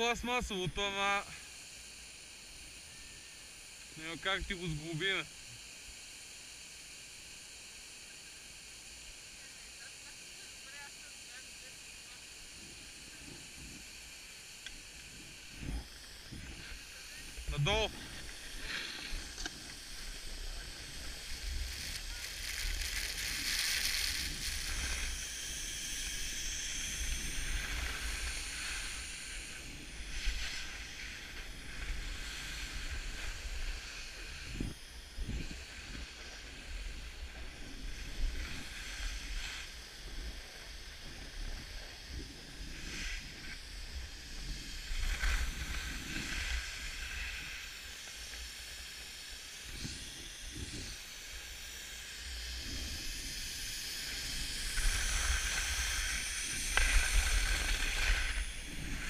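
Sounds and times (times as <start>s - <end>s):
skis scraping over snow: 9.4s - 59.0s
wind rumbling on microphone: 12.4s - 59.0s.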